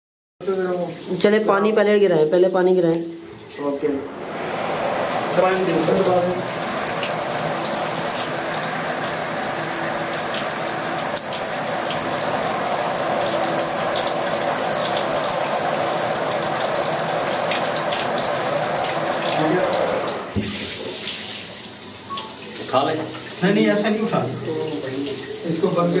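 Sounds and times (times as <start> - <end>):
shower spray splashing water: 0.4 - 26.0.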